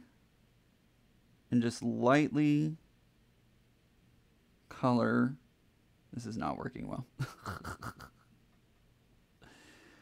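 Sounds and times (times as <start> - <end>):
man laughing breathily: 7.2 - 8.4.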